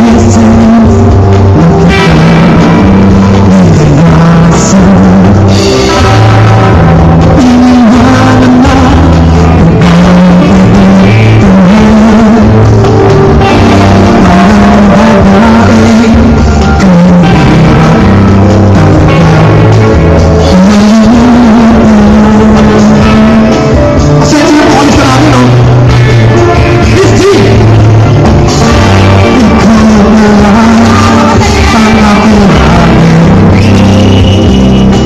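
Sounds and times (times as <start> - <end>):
live rock band playing: 0.0 - 35.0.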